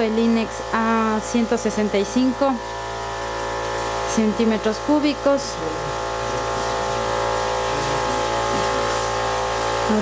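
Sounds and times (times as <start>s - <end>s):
steady machine hum: 0.0s - 10.0s.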